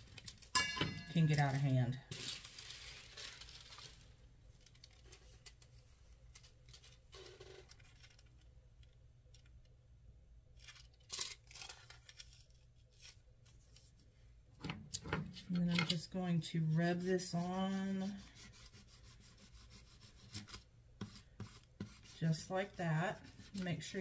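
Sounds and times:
foil rustling and crinkling: 0.0s - 8.4s, 10.6s - 13.6s.

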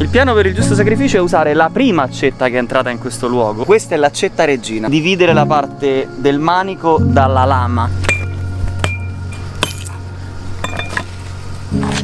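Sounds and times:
hatchet striking axe head: 8.0s - 10.0s.

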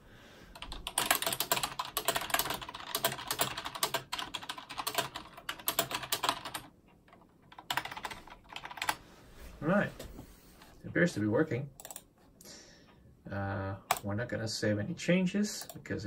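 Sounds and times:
rapid typing on keyboard: 0.5s - 9.0s, 11.8s - 12.1s.

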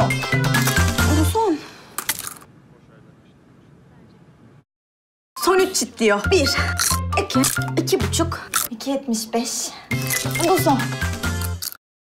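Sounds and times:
seed cracking between teeth: 6.7s - 7.7s, 8.5s - 8.7s, 10.0s - 10.4s.

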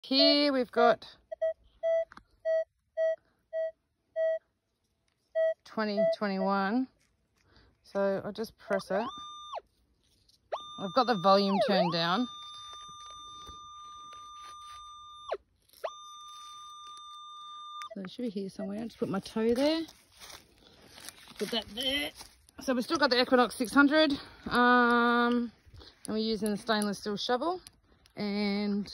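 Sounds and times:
metal detector low beeps: 1.3s - 4.4s, 5.3s - 6.8s, 8.6s - 9.6s, 10.5s - 19.4s.

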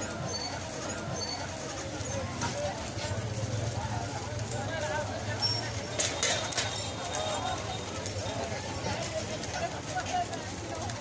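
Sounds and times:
crowd of voices talking: 0.0s - 11.0s.

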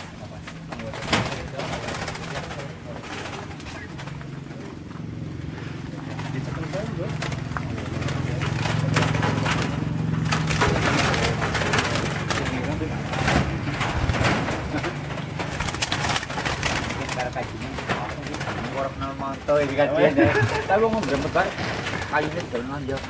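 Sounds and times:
doves cooing: 0.0s - 23.0s
rustles: 0.0s - 23.0s.

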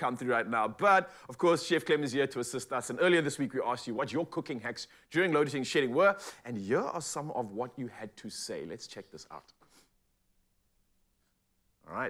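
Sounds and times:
person speaking: 11.7s - 12.0s.

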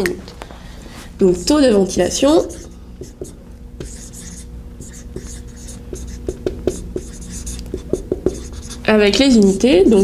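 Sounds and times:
marker writing on whiteboard: 2.4s - 8.9s.

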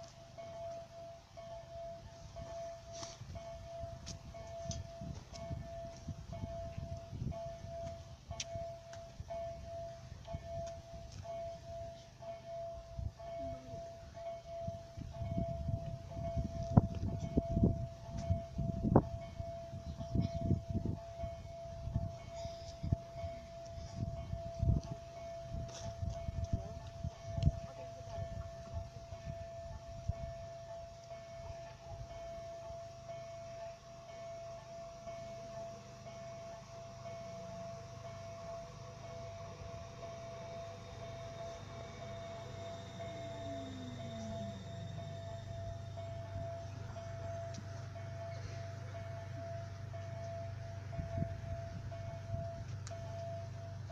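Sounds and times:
train rumble approaching: 0.0s - 53.9s
wind buffeting microphone: 3.2s - 11.9s, 14.0s - 30.5s, 50.8s - 52.9s
steady high hum: 33.6s - 53.9s.

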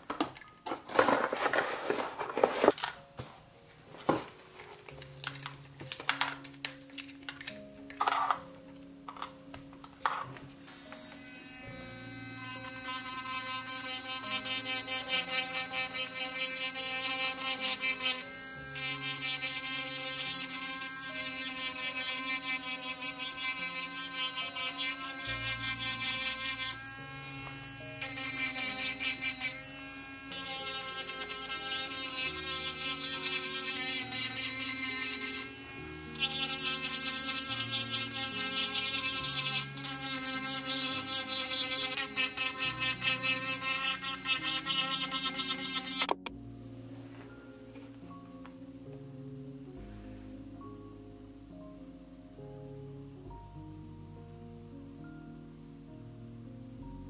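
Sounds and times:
background music: 0.0s - 57.0s
electric nail drill filing: 10.7s - 46.3s.

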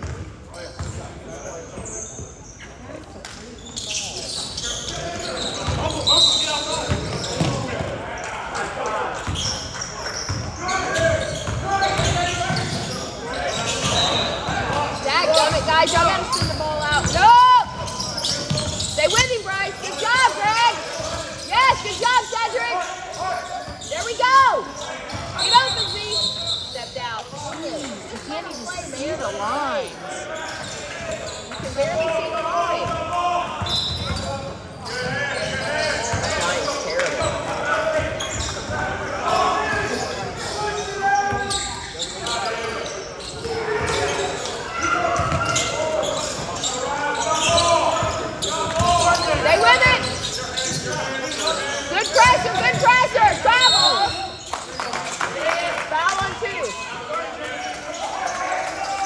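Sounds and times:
sneakers squeaking: 0.0s - 59.0s.

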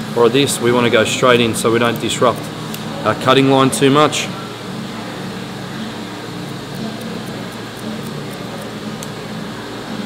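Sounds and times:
steady low hum: 0.0s - 10.0s
scissors snipping hair: 6.5s - 9.2s.

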